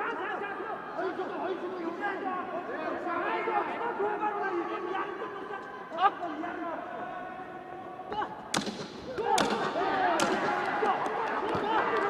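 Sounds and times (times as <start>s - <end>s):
voices shouting: 9.0s - 12.0s.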